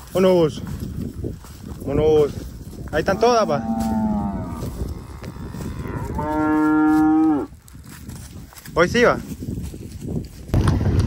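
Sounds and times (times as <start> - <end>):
cow mooing: 3.1 - 7.5.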